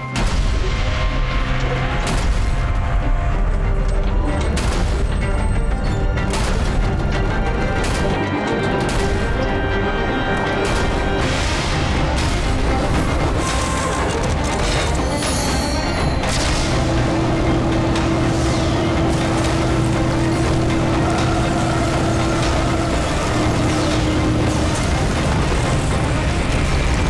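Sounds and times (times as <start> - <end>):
dramatic action music: 0.0 - 27.0.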